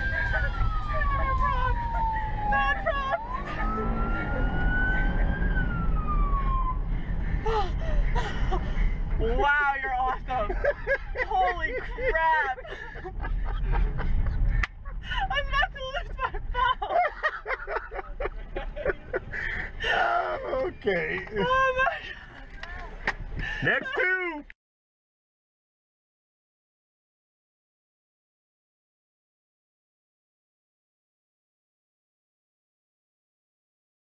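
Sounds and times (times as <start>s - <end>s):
police siren wailing: 0.0s - 8.2s
people shrieking and laughing: 0.0s - 22.0s
engine and road rumble: 0.0s - 24.6s.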